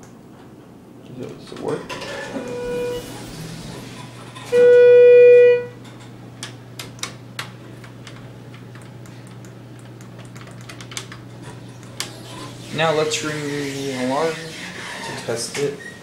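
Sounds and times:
elevator electronic beep: 2.2s - 3.8s, 4.4s - 5.8s.

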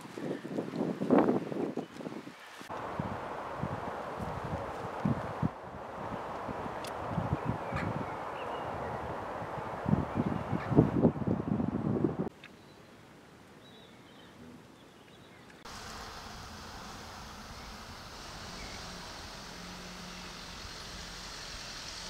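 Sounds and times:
wind buffeting microphone: 0.0s - 12.3s
steady hiss: 15.6s - 22.0s.

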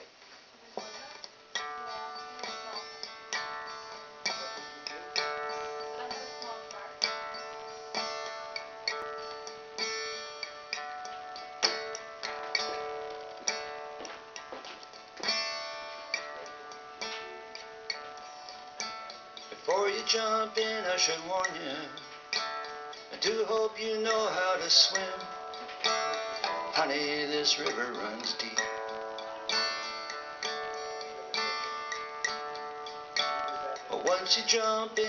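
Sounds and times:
acoustic guitar playing: 0.0s - 35.0s.

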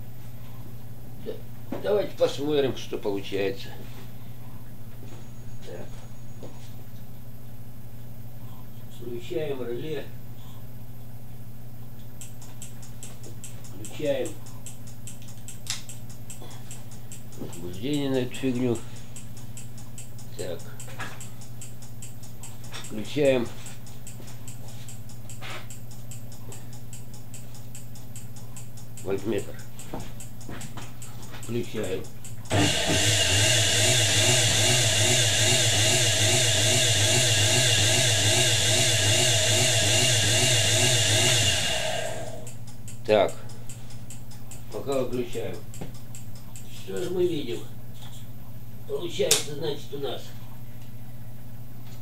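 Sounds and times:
low electrical hum: 0.0s - 52.0s
sharp relay click: 12.2s - 23.0s
relay clicking rapidly: 31.0s - 47.2s
electric motor humming and whining: 32.5s - 42.6s.

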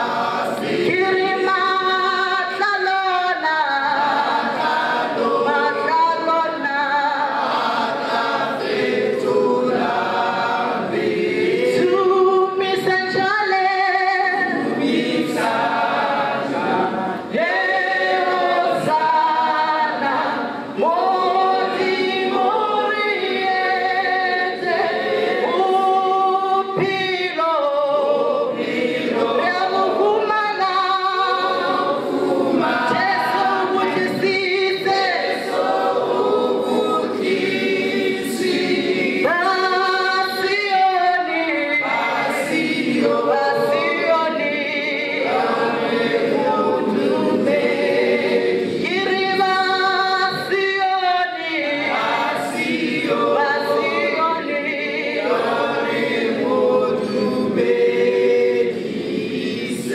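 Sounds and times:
group singing unaccompanied: 0.0s - 59.9s
woman singing into microphone: 0.6s - 4.3s, 5.2s - 7.3s, 11.6s - 15.2s, 17.2s - 28.6s, 29.2s - 32.0s, 32.6s - 35.6s, 39.2s - 45.4s, 48.8s - 55.1s.

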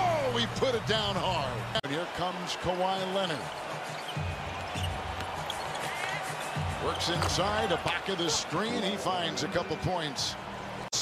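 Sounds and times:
arena music: 2.9s - 10.9s.

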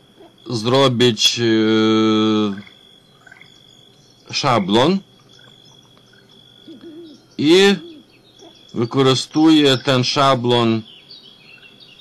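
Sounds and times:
high-pitched whine: 0.0s - 12.0s
man's hesitation hum: 0.0s - 12.0s.

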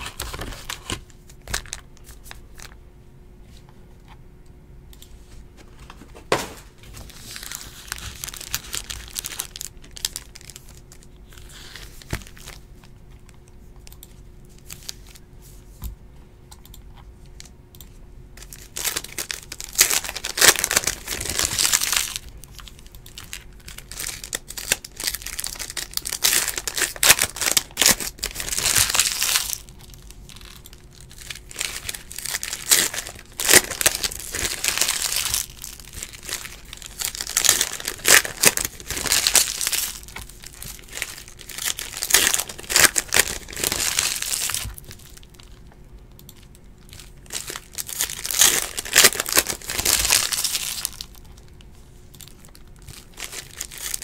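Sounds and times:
foil packs tearing and crinkling: 0.0s - 2.4s, 6.6s - 12.6s, 18.4s - 45.6s, 46.9s - 51.5s, 52.2s - 54.0s.

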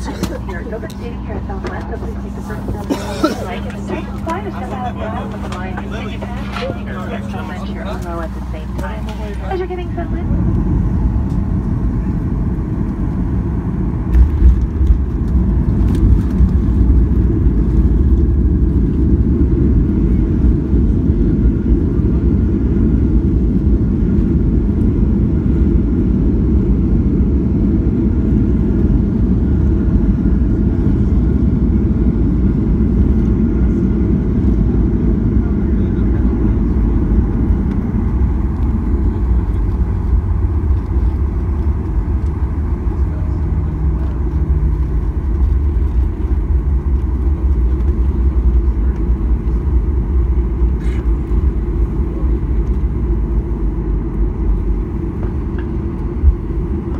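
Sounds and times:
jet engines and wheels rumbling: 0.0s - 56.9s.

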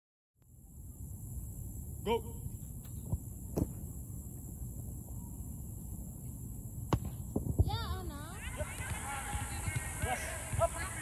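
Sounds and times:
soccer ball kicked thuds: 2.8s - 4.0s, 6.8s - 7.9s, 8.8s - 10.9s.

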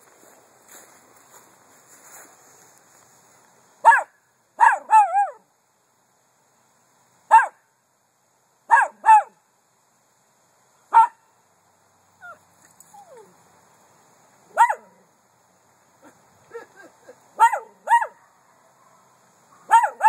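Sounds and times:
small dog barking in high yaps: 3.8s - 5.4s, 7.3s - 7.6s, 8.7s - 9.4s, 10.9s - 11.3s, 14.5s - 15.0s, 17.4s - 20.0s
dog whining: 12.2s - 13.3s.

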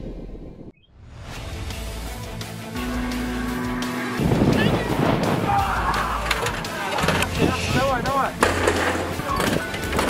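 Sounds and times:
men calling out: 3.3s - 8.2s
metal clanks and knocks: 6.2s - 7.5s, 8.4s - 10.0s.

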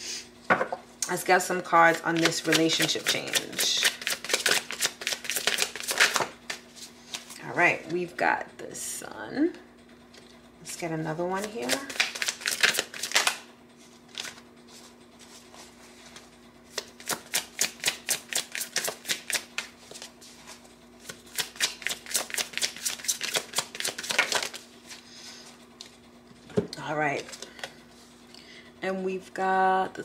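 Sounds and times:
cards being shuffled: 1.8s - 7.4s, 11.4s - 25.0s.

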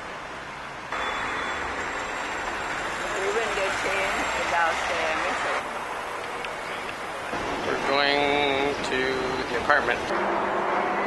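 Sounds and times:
traffic running by: 0.0s - 11.0s.

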